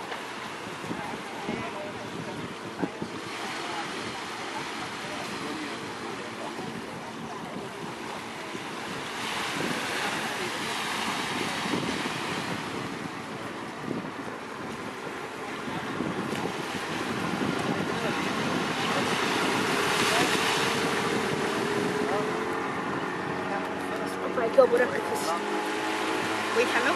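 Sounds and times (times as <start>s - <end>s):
small waves washing onto beach: 0.0s - 26.9s
wind on microphone: 0.0s - 26.9s.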